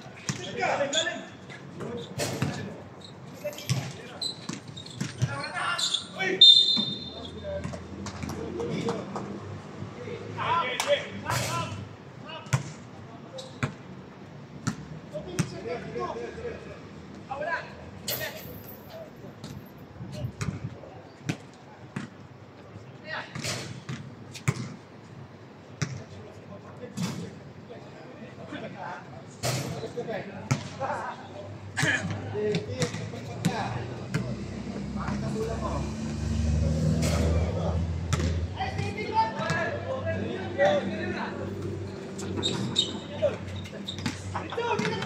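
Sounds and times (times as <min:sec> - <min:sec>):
background chatter: 0:26.0 - 0:45.0.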